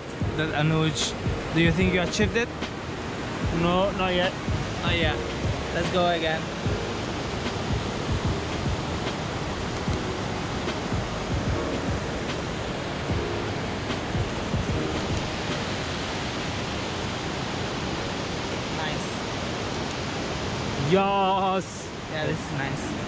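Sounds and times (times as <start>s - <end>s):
wind rumble on microphone: 0.0s - 20.9s
river rapids rushing: 0.0s - 23.0s.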